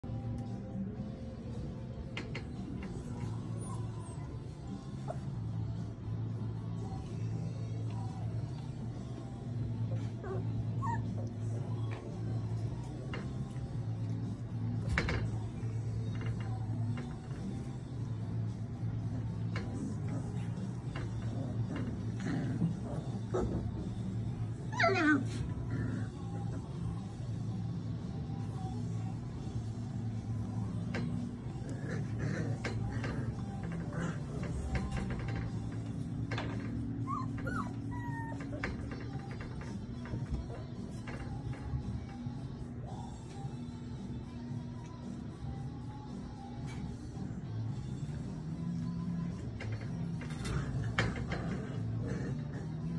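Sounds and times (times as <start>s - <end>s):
steady low hum: 0.0s - 52.9s
puppies whimpering: 9.9s - 12.0s, 24.4s - 26.4s, 36.6s - 40.1s.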